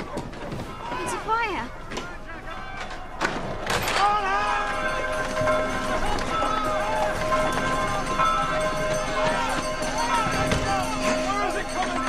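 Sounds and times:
people shouting: 0.0s - 12.0s
held music notes: 4.3s - 12.0s.

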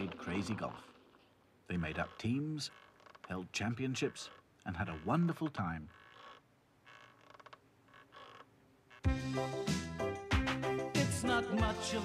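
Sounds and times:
faint clicking creaks: 0.0s - 9.1s.

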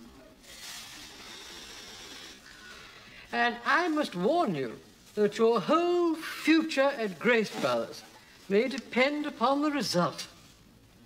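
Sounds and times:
breath blown into plastic bag: 0.4s - 3.3s.

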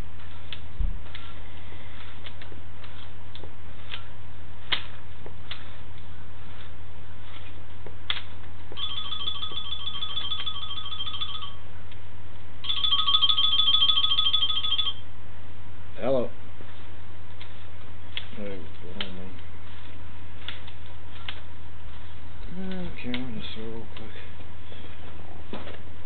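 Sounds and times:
warbling phone ringtone: 8.8s - 11.6s, 12.6s - 15.0s.

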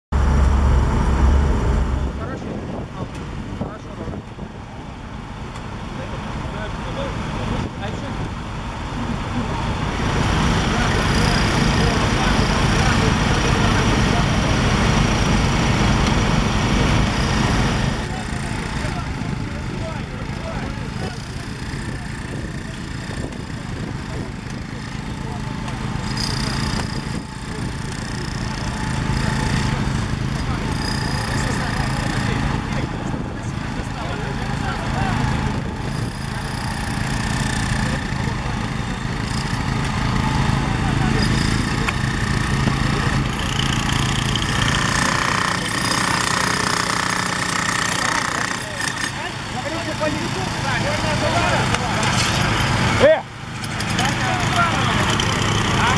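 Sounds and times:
engine running: 0.1s - 55.9s
people talking: 2.0s - 4.5s, 5.9s - 8.3s, 9.0s - 15.0s, 15.8s - 36.5s, 40.3s - 42.0s, 48.0s - 53.3s, 53.9s - 55.9s.

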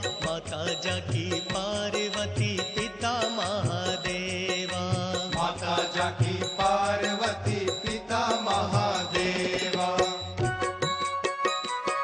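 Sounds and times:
devotional music with wavering melody: 0.0s - 12.0s.

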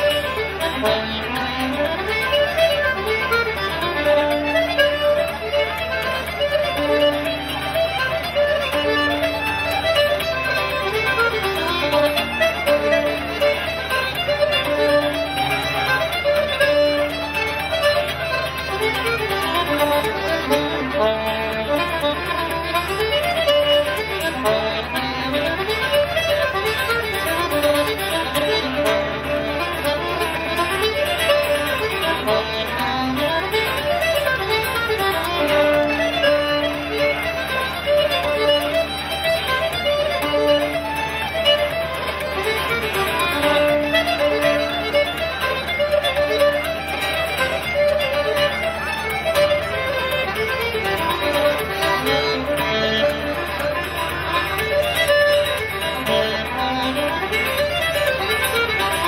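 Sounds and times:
accordion: 0.0s - 59.0s
fiddle melody: 0.0s - 59.0s.

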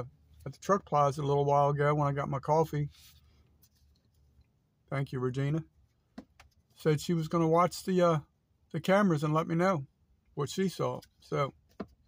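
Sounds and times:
man speaking: 0.0s - 3.0s, 4.9s - 5.7s, 6.7s - 11.6s.

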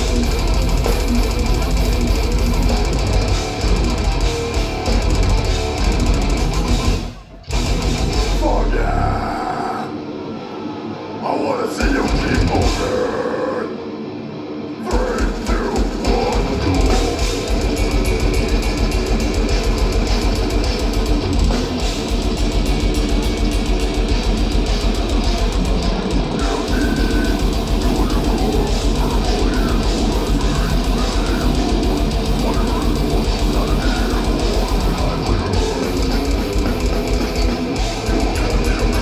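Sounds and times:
death metal band playing: 0.0s - 39.0s
electric guitar: 0.0s - 39.0s.

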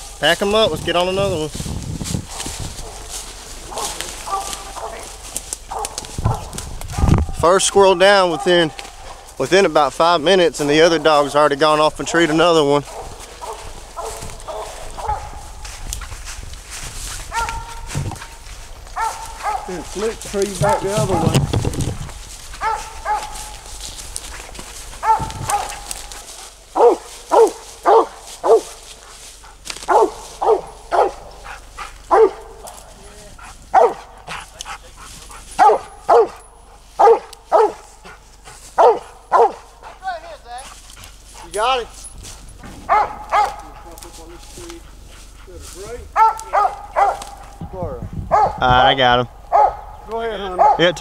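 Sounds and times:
dog barking: 2.8s - 7.4s, 8.0s - 9.3s, 12.8s - 15.6s, 17.3s - 20.0s, 20.6s - 21.4s, 22.5s - 23.7s, 25.0s - 28.8s, 29.8s - 32.8s, 33.7s - 34.5s, 35.4s - 40.0s, 42.8s - 44.0s, 46.1s - 47.6s, 48.3s - 48.7s, 49.5s - 51.0s.

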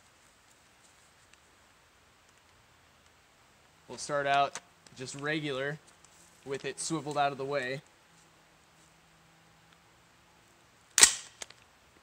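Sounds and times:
rifle shot: 11.0s - 11.5s.

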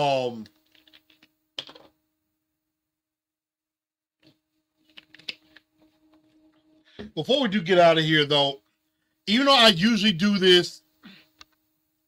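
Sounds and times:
low electrical hum: 0.0s - 2.9s, 4.2s - 12.0s.

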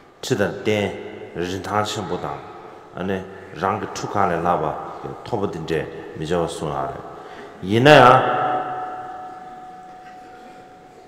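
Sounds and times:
voice reverberating in a hall: 0.0s - 11.0s.

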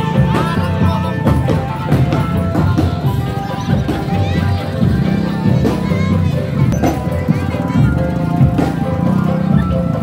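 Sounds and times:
street drum band: 0.0s - 10.0s.

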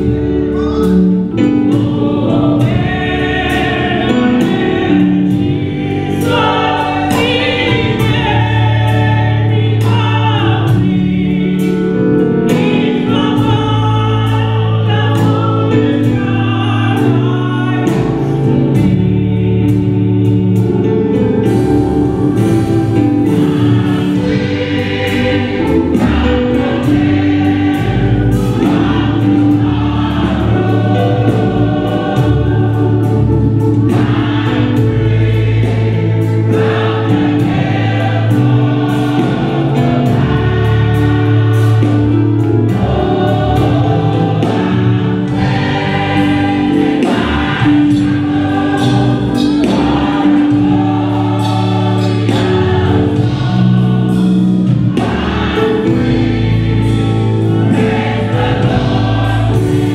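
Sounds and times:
choir singing gospel: 0.0s - 59.9s
instrumental accompaniment: 0.0s - 59.9s.

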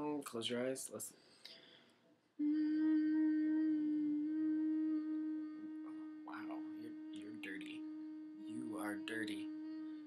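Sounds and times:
man humming: 2.4s - 10.0s.

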